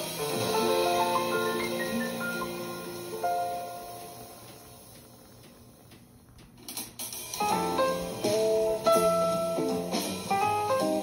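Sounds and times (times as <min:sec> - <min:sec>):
faint hiss: 0:00.0 - 0:06.0.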